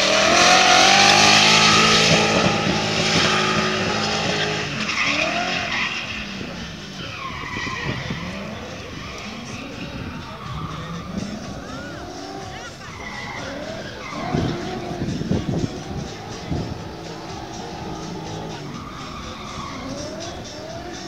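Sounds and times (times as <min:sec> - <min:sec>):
car engine revving: 0:00.0 - 0:21.0
tyres skidding and squealing: 0:00.0 - 0:21.0.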